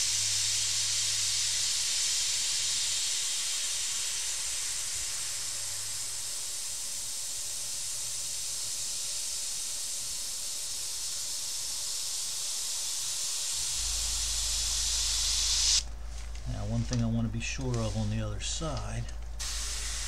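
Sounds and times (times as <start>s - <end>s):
airbrush hissing: 0.0s - 20.0s.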